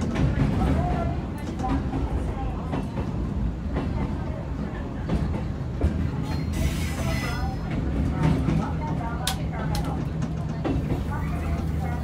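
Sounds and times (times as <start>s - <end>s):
train rumbling on rails: 0.0s - 12.0s.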